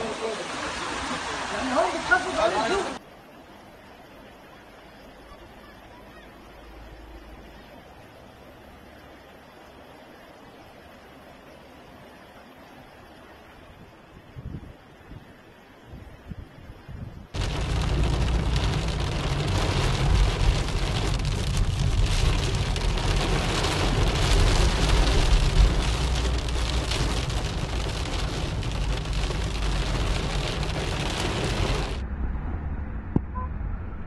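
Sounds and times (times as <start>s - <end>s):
heavy rain on car roof: 0.0s - 3.0s, 17.4s - 32.0s
low rumble: 17.4s - 34.0s.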